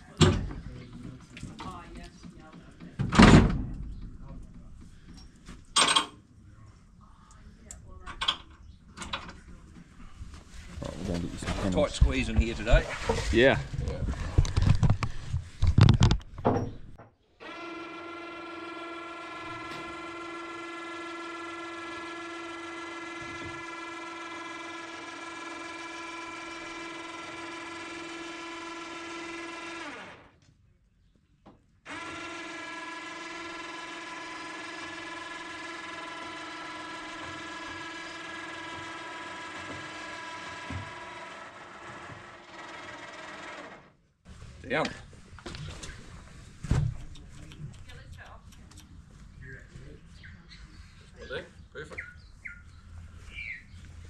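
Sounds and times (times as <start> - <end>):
small motor whining: 17.4 - 30.4, 31.9 - 44.0.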